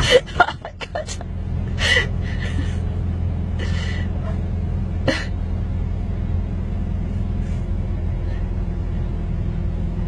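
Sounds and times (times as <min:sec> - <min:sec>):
person laughing breathily: 0:00.0 - 0:03.0, 0:03.6 - 0:04.2
car cabin hum: 0:00.0 - 0:10.0.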